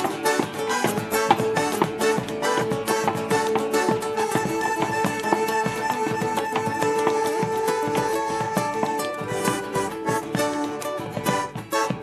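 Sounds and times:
boots stamping on stage: 0.0 - 12.0
folk instruments playing: 0.0 - 12.0.

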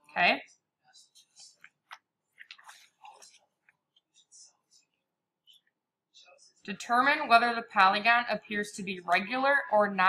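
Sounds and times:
paper page rustling: 1.2 - 3.5.

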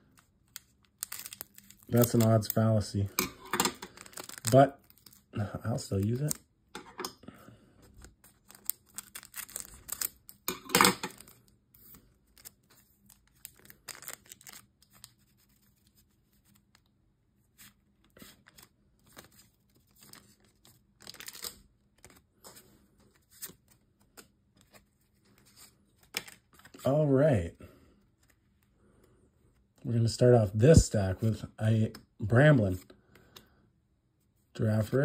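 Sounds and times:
soft rustling of packs: 0.0 - 3.1, 3.8 - 6.4, 11.1 - 27.0
foil wrappers tearing and crinkling: 0.6 - 3.0, 3.8 - 6.4, 8.3 - 10.5, 12.3 - 15.2, 19.1 - 22.2.

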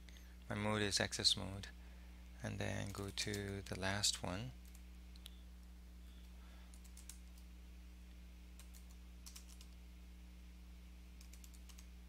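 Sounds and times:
low steady hum: 0.0 - 12.0
computer keyboard typing: 2.8 - 3.8, 6.7 - 7.4, 8.6 - 9.8, 11.2 - 11.9.

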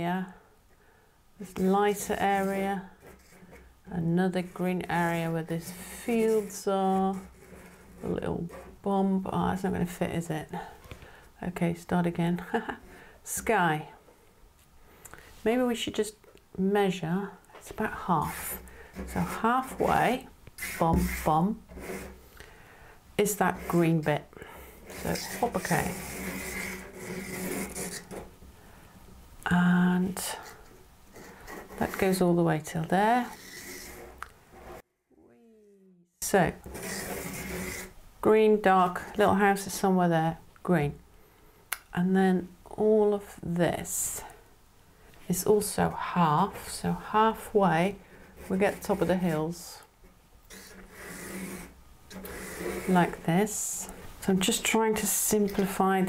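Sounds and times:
pastel scratching on paper: 1.4 - 3.7, 4.4 - 8.8, 18.3 - 22.2, 24.8 - 28.2, 33.2 - 34.8, 36.6 - 38.0, 48.3 - 49.4, 50.5 - 53.3.

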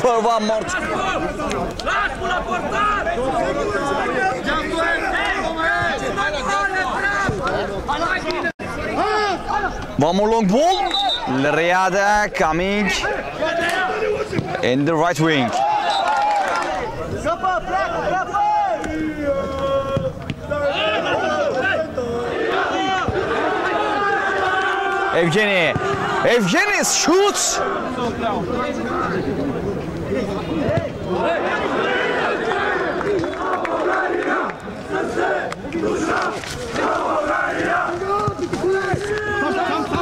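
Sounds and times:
crowd shouting: 0.0 - 40.0.

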